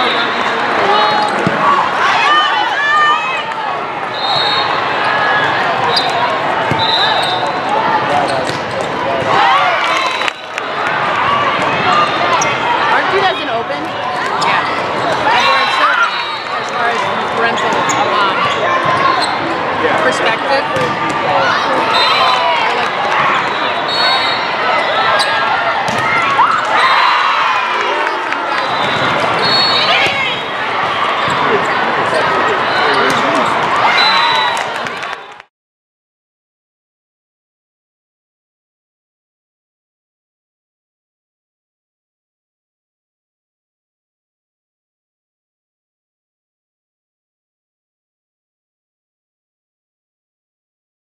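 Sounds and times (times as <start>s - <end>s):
players calling: 0.0s - 35.1s
voices and shouts: 0.0s - 35.3s
crowd chatter: 0.0s - 35.5s
sneakers squeaking on court: 16.6s - 19.5s, 28.5s - 33.7s
volleyballs struck and bouncing: 25.8s - 26.8s.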